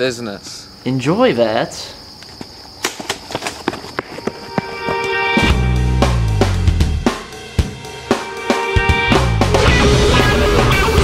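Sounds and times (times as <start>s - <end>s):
crickets buzzing: 0.0s - 9.1s
running footsteps on asphalt: 2.2s - 5.2s.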